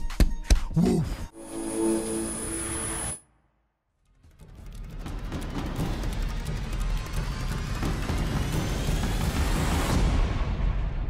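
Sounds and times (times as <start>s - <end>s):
thin high whine: 1.4s - 3.2s.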